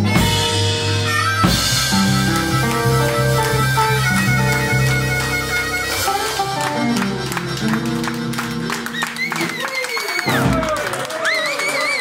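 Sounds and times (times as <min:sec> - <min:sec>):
electric guitar: 0:00.0 - 0:10.9
bass: 0:00.0 - 0:11.0
blues harmonica: 0:00.0 - 0:12.0
drums: 0:00.0 - 0:12.0.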